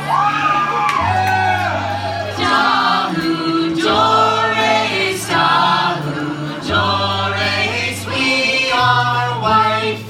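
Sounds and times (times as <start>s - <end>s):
low accompaniment: 0.0s - 10.0s
group of voices singing: 1.1s - 10.0s.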